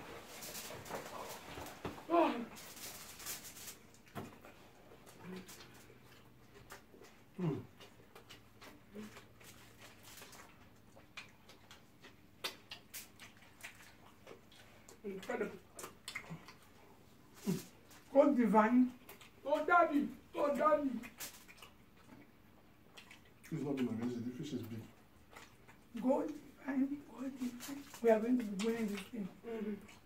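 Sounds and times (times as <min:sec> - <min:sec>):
people chewing: 0:00.0 - 0:30.0
person humming mm: 0:07.4 - 0:07.7.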